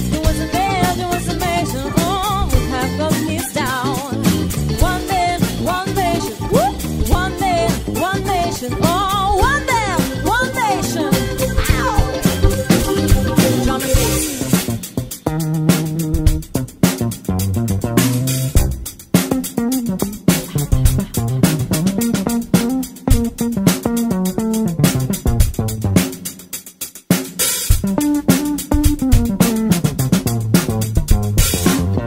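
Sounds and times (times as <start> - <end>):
keyboard: 0.0 - 15.0
electric guitar: 0.0 - 26.2, 27.7 - 32.0
electric bass line: 0.0 - 26.3, 27.7 - 32.0
drum kit: 0.0 - 32.0.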